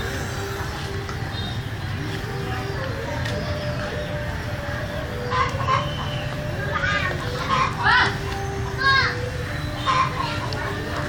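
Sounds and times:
chickens clucking: 5.0s - 11.0s.

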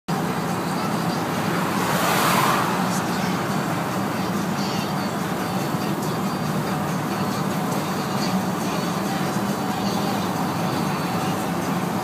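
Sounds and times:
van engine and road noise: 0.1s - 12.0s
rushing noise: 1.0s - 4.4s.

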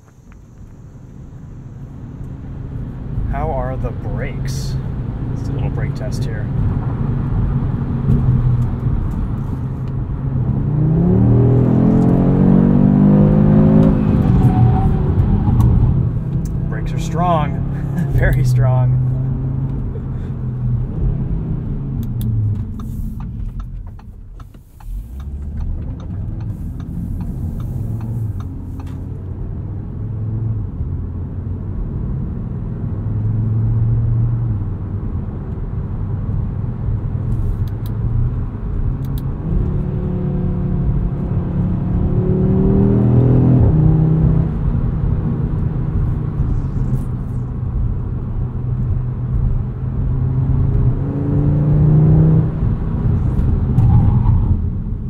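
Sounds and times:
car engine accelerating: 0.0s - 55.0s
road rumble: 0.0s - 55.0s.

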